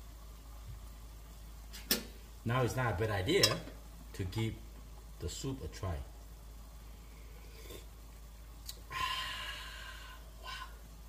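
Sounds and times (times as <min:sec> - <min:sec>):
person sighing ahh: 0:08.8 - 0:10.9.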